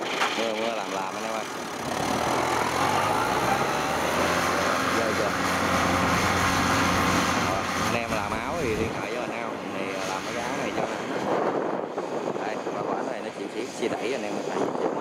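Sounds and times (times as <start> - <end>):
tracked vehicle engine running: 0.0 - 11.4.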